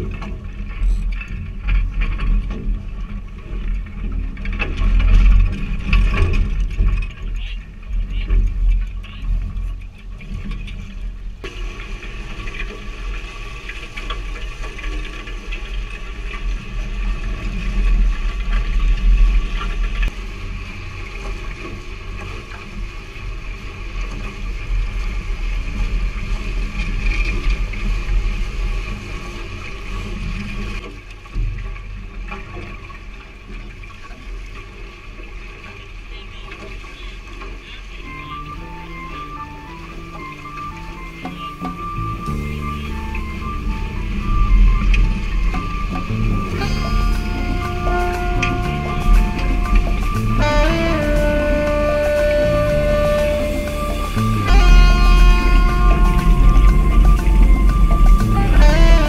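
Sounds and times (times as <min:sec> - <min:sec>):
water rushing past hulls: 0:00.0 - 0:59.0.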